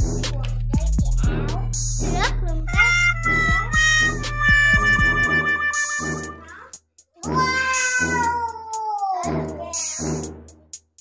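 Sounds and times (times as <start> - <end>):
background music with steady beat: 0.0 - 11.0
meow-like cry: 7.3 - 8.5.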